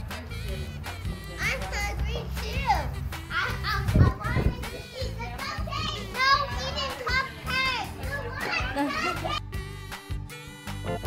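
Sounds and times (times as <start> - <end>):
background music: 0.0 - 11.0
child laughing: 8.1 - 9.4.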